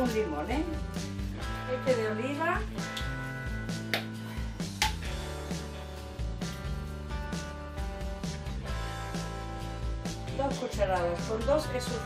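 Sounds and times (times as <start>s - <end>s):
background music with guitar: 0.0s - 12.0s.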